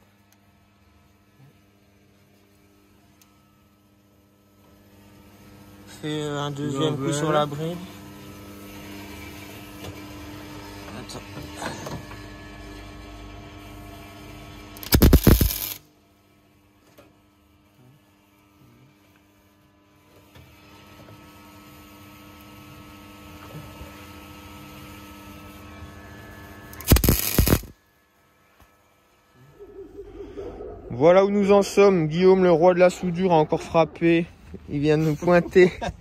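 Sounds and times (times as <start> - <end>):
steady electrical hum: 14.4 - 16.3, 24.2 - 36.0
welding arc bursts: 14.8 - 15.8, 26.7 - 27.8.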